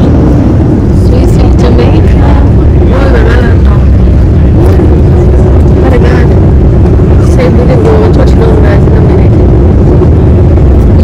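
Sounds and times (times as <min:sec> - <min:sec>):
jet engine roar in cabin: 0:00.0 - 0:11.0
runway rumble: 0:00.0 - 0:11.0.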